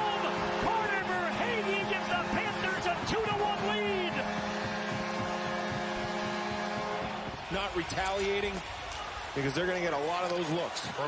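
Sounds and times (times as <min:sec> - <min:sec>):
low droning goal horn: 0:00.0 - 0:08.4
arena crowd cheering: 0:00.0 - 0:11.0.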